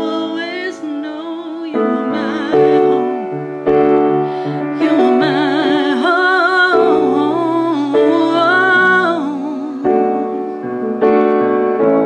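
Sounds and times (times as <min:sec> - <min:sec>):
woman singing with vibrato: 0:00.0 - 0:03.4, 0:04.4 - 0:10.6
sustained keyboard chords: 0:00.0 - 0:12.0.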